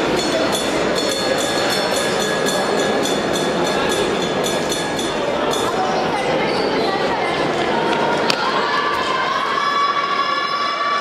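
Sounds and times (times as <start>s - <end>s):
crowd hubbub: 0.0s - 11.0s.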